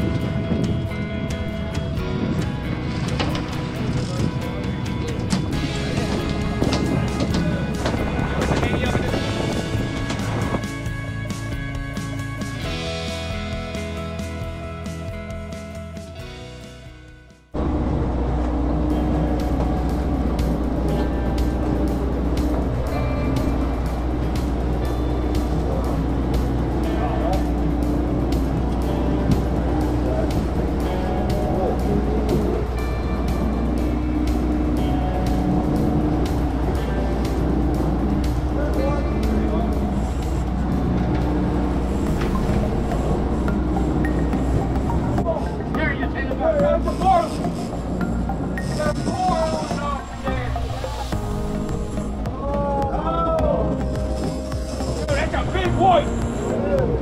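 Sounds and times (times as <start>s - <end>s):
rushing wake water: 0.0s - 13.9s, 17.6s - 57.0s
wind: 0.0s - 16.6s, 17.5s - 57.0s
boat engines droning: 0.0s - 16.7s, 17.5s - 57.0s
music: 0.0s - 57.0s.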